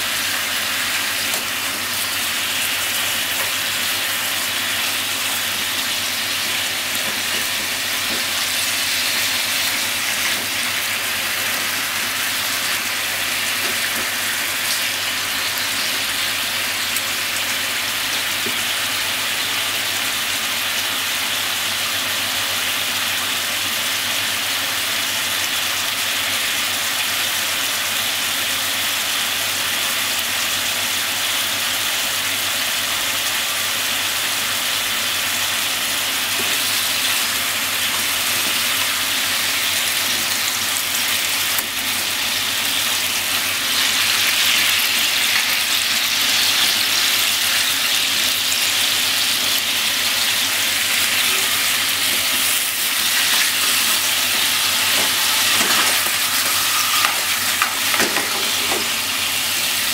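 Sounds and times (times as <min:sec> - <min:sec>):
radish frying in a pan: 0:00.0 - 0:59.9.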